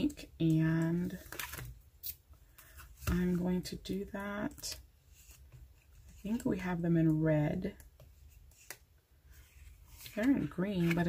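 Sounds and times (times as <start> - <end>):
paper pages rustling: 9.4 - 11.0.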